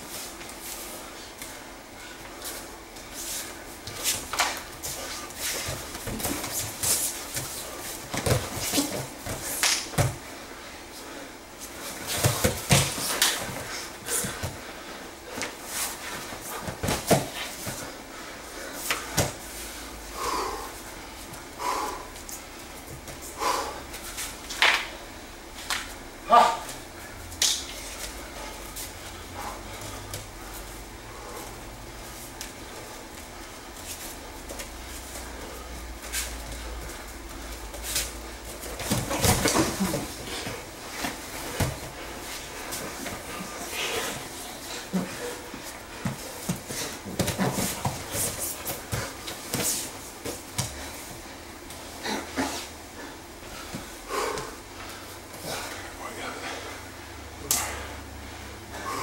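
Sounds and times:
bodies thudding on foam mats: 3.8s - 10.3s, 11.8s - 14.6s, 15.3s - 18.0s, 35.6s - 52.7s
breathing and grunts: 17.3s - 20.8s, 21.5s - 22.2s, 42.4s - 49.2s, 51.9s - 59.0s.

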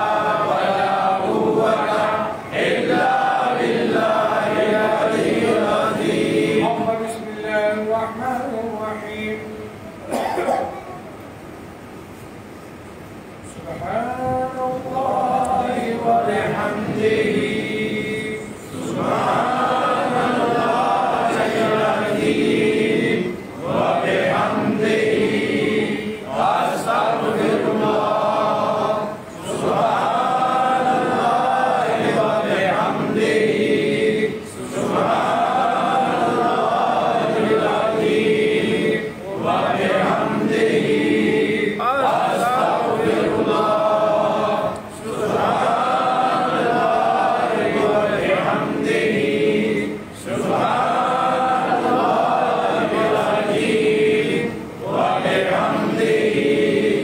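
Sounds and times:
voices chanting in unison: 0.0s - 7.9s, 14.3s - 57.0s.

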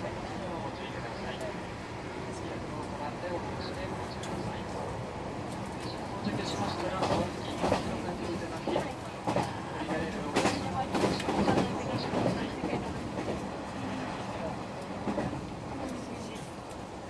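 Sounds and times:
train rolling rumble: 0.0s - 17.0s
train wheels clacking over rails: 5.5s - 16.8s.

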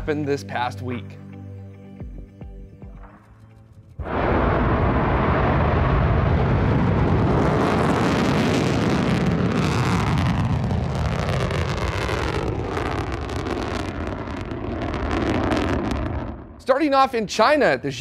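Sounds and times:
rocket roar: 3.8s - 17.0s
falling swoosh: 4.0s - 16.6s.

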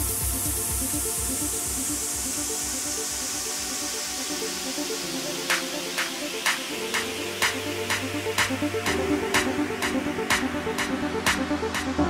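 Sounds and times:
house music with low beat: 0.0s - 12.0s.

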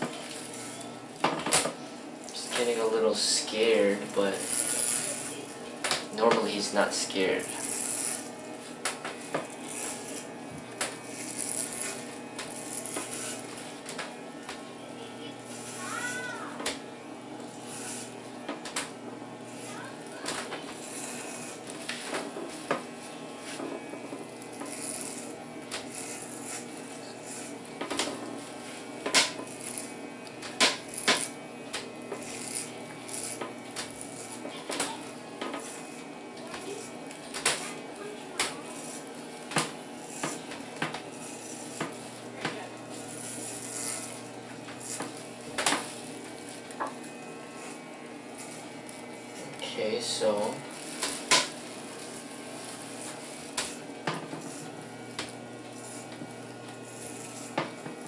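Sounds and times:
hair clipper buzzing: 0.0s - 58.0s.

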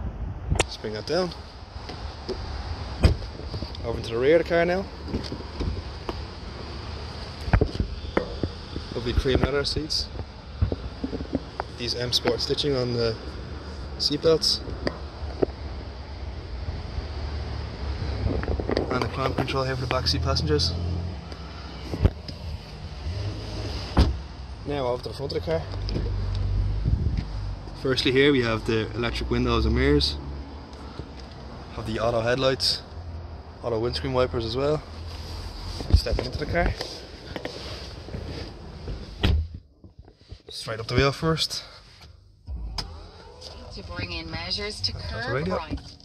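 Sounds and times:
sharp thump: 24.0s - 24.2s
wind buffeting microphone: 26.7s - 27.4s.

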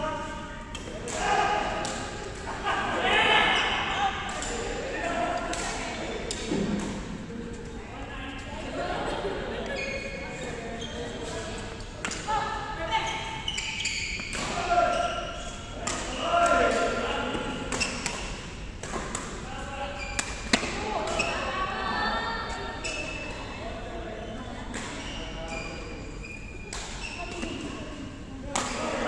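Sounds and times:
voices echoing in a hall: 0.0s - 29.0s
racket hitting shuttlecock: 15.8s - 19.4s, 20.2s - 21.3s.

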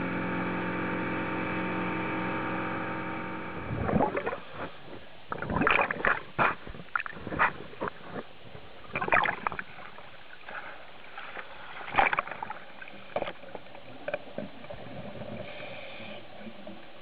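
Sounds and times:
muffled underwater water noise: 0.0s - 17.0s
bubbling and splashing: 3.7s - 15.6s.

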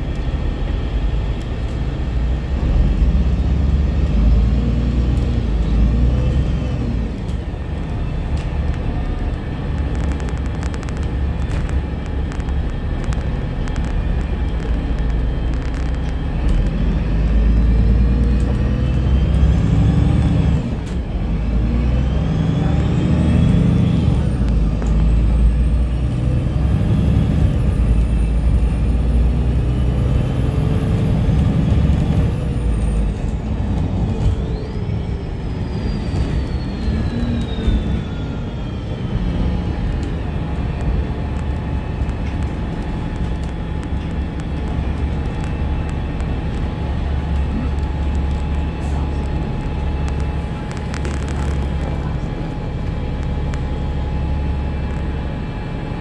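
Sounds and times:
bus drive and road rumble: 0.0s - 56.0s.

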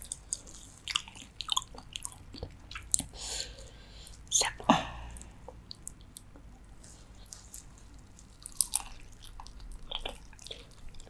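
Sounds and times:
wet chewing: 0.0s - 4.2s, 5.2s - 11.0s.

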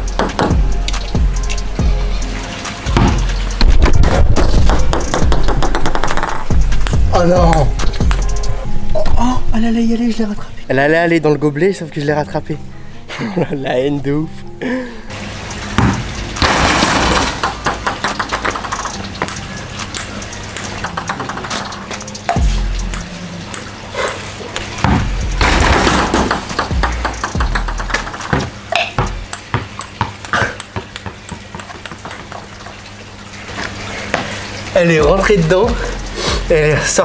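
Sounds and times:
background music with bass: 0.0s - 11.0s, 11.8s - 29.6s, 34.7s - 37.0s
ping-pong ball bouncing: 0.1s - 0.6s, 3.9s - 8.5s, 16.9s - 24.2s, 24.8s - 32.8s
ball clattering: 3.9s - 8.4s, 15.8s - 19.4s, 20.0s - 21.9s, 24.8s - 32.8s.

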